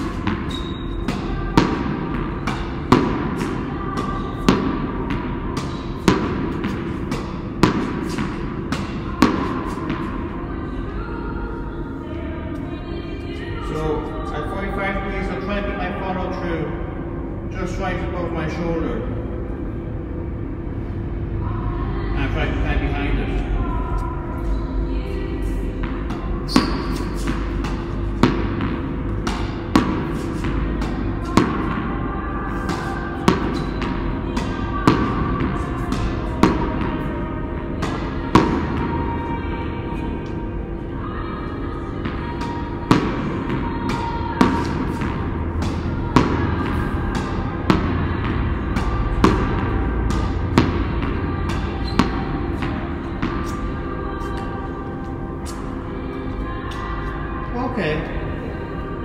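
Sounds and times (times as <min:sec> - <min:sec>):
racket hitting tennis ball: 0:00.0 - 0:10.4, 0:25.8 - 0:31.9, 0:32.5 - 0:39.4, 0:41.8 - 0:54.5
background music: 0:00.0 - 0:59.0.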